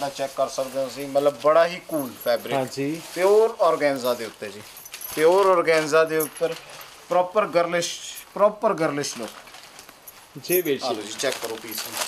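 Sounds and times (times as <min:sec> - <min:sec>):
man talking: 0:00.0 - 0:09.4, 0:10.3 - 0:12.0
fabric rustling: 0:00.0 - 0:12.0.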